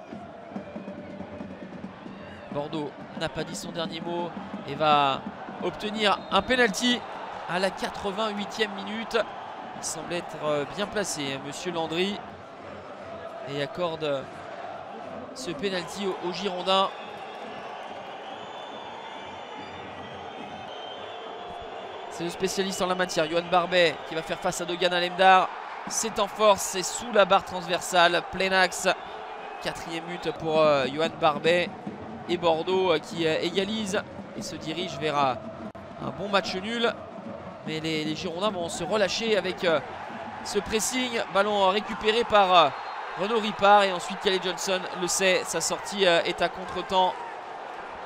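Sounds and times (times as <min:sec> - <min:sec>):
stadium crowd noise: 0:00.0 - 0:48.0.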